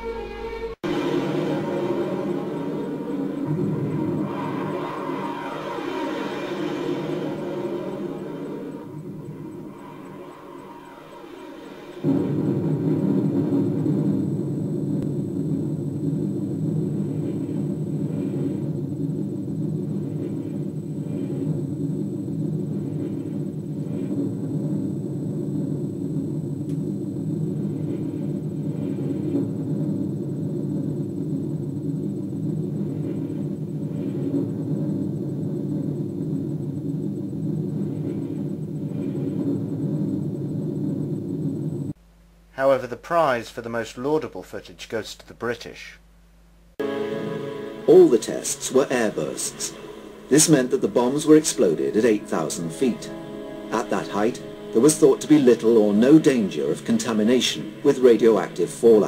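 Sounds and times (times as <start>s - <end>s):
deep steady rumble: 0.0s - 42.5s, 46.0s - 59.0s.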